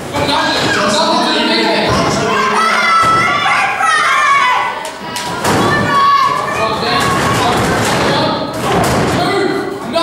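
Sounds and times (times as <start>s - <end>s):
crowd shouting: 0.3s - 9.0s.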